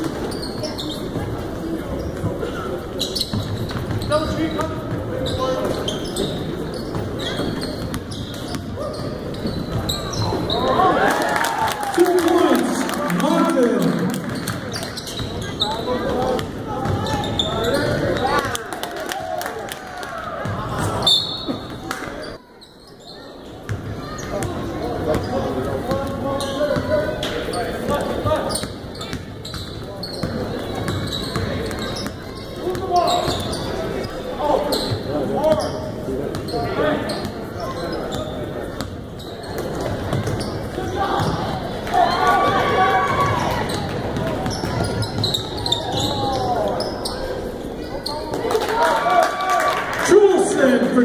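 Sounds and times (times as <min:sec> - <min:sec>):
voices in echoing hall: 0:00.0 - 0:51.0
basketball bouncing on wooden floor: 0:16.1 - 0:17.7.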